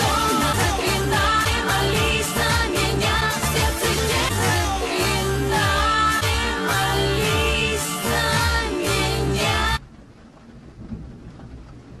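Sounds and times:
low rumble: 0:09.8 - 0:12.0
rain falling: 0:09.8 - 0:12.0.

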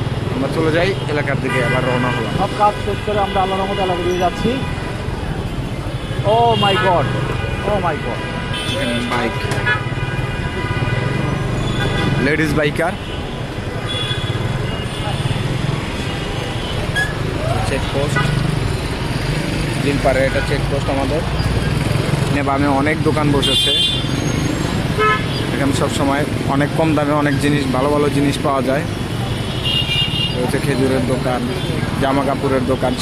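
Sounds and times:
road traffic rumble: 0:00.0 - 0:33.0
voices: 0:00.2 - 0:09.8.

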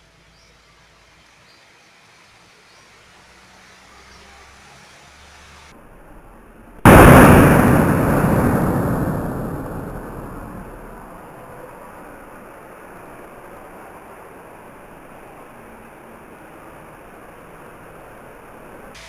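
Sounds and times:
loud blast: 0:06.8 - 0:12.1
rushing hiss: 0:06.9 - 0:12.0.

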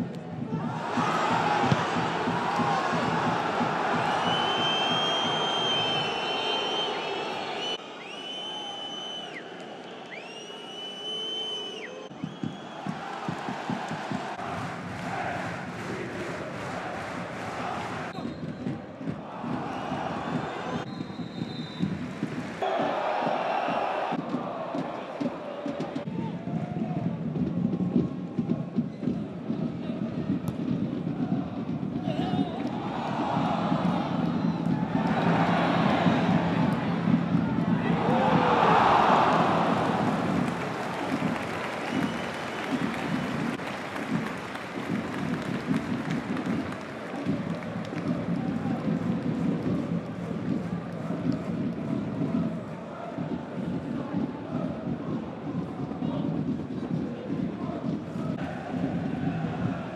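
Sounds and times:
stadium crowd cheering and chanting: 0:00.0 - 0:59.9
shrill whistle blasts: 0:04.1 - 0:12.9, 0:20.7 - 0:22.0.

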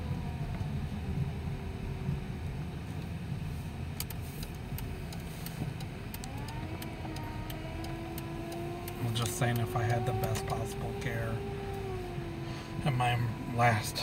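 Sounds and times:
vehicle engine and road rumble: 0:00.0 - 0:14.0.

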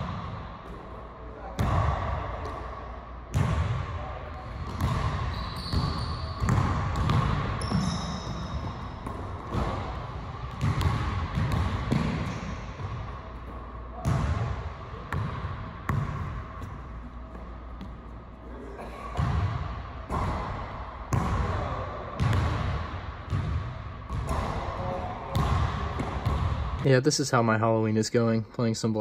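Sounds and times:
basketball bouncing on court: 0:00.0 - 0:01.0, 0:03.3 - 0:18.2, 0:19.1 - 0:26.9.

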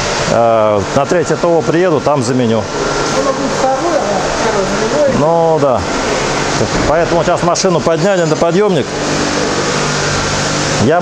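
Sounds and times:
steady background noise: 0:00.0 - 0:11.0
man speaking: 0:00.3 - 0:05.9, 0:06.5 - 0:08.9.

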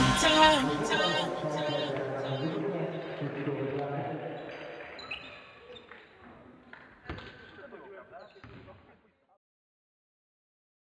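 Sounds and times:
voices in hall: 0:00.0 - 0:09.2
basketball bouncing on court: 0:08.4 - 0:08.8.

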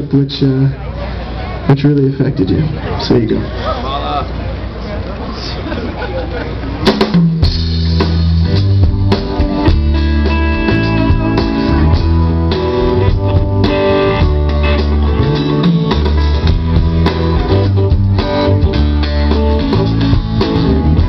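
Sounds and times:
low bass notes: 0:06.6 - 0:21.0
drum kit: 0:06.8 - 0:21.0.

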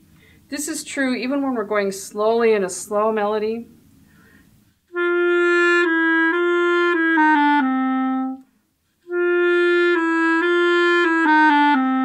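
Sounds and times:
solo clarinet playing: 0:04.9 - 0:12.0.

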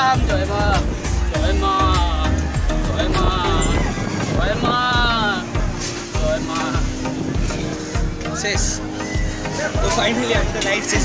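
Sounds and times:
background music with held tones: 0:00.0 - 0:11.0.

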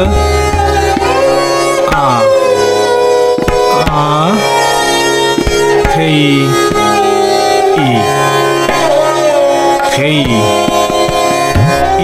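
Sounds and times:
melodic instrument sliding notes: 0:00.0 - 0:12.0
tabla strokes: 0:00.0 - 0:12.0.

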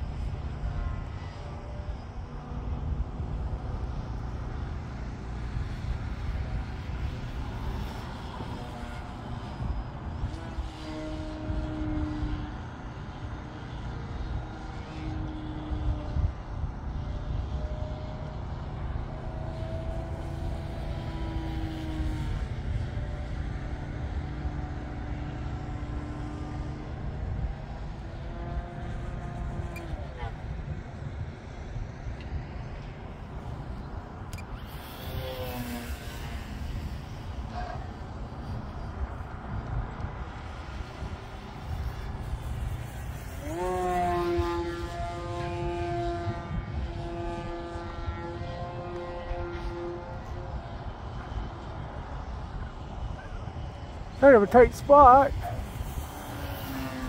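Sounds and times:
faint model plane motor whine: 0:00.0 - 0:57.0
wind on microphone: 0:00.0 - 0:57.0
low steady rumble: 0:14.0 - 0:57.0.

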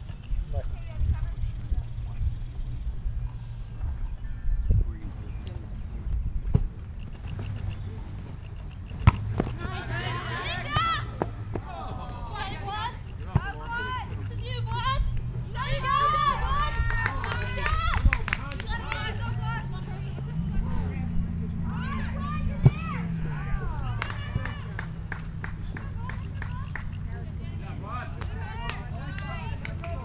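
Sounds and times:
steady low rumble: 0:00.0 - 0:30.0.

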